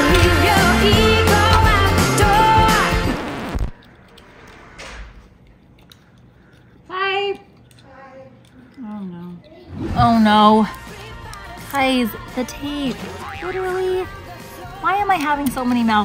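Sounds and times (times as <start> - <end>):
pop music with singing: 0.0 - 3.7, 10.1 - 16.0.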